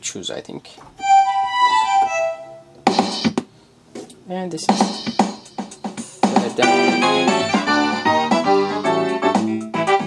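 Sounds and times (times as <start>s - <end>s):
short percussive hits: 2.8s - 3.5s.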